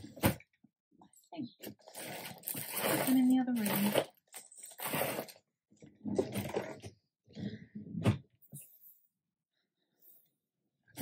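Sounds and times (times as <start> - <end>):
woman's voice: 3.0 - 4.0.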